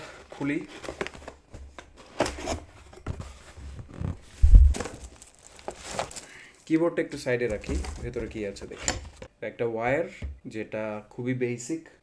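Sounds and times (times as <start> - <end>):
cardboard box handled: 0.4 - 6.2, 7.5 - 8.6
plastic bag crinkling: 4.3 - 6.8.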